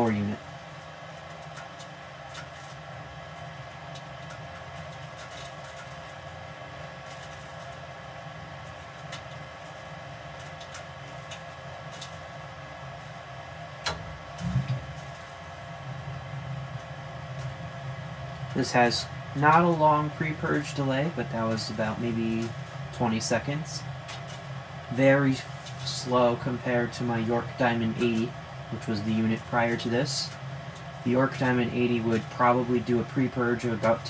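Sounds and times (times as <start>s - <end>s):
furnace draft inducer humming: 0.0s - 34.0s.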